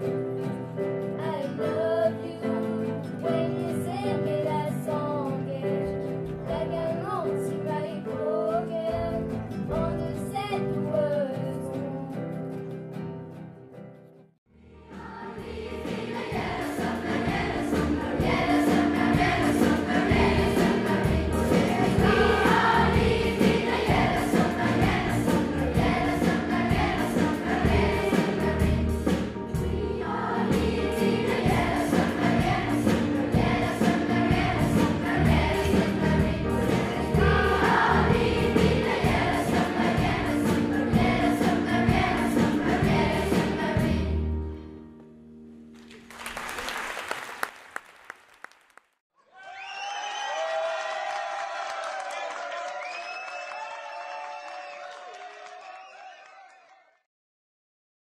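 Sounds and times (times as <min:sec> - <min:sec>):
choir of young voices singing: 0:14.8 - 0:44.3
live band over steady beat: 0:16.0 - 0:29.8.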